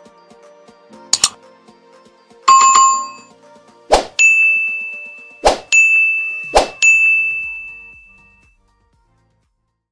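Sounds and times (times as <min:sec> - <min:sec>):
bright bell-like ding: 0:02.5 - 0:03.3, 0:04.2 - 0:08.4
brief swishes: 0:03.9 - 0:04.2, 0:05.4 - 0:05.7, 0:06.5 - 0:06.8.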